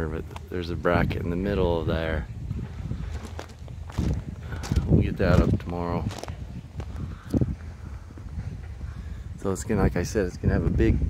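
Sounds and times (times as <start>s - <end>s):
low outdoor rumble: 0.0s - 11.0s
footsteps on paved patio: 2.5s - 8.9s.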